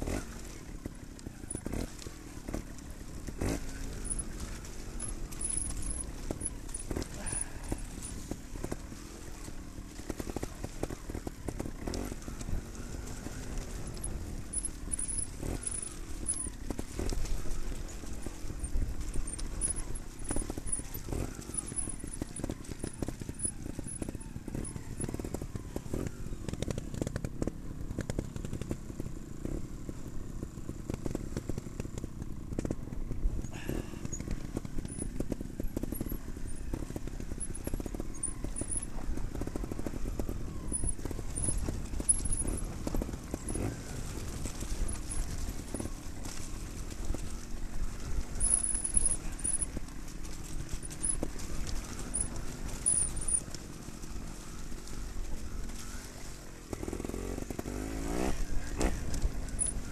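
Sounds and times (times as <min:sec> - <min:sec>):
motorcycle engine at low revs: 0:00.0 - 0:59.9.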